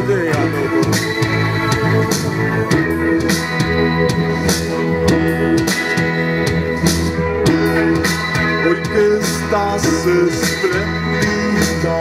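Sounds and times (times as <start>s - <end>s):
drums with steady beat: 0.0s - 12.0s
electric bass: 0.0s - 12.0s
electric guitars: 0.0s - 12.0s.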